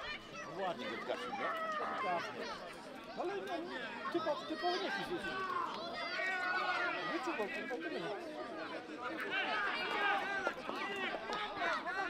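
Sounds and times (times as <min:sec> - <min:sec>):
people talking and calling out: 0:00.0 - 0:12.0.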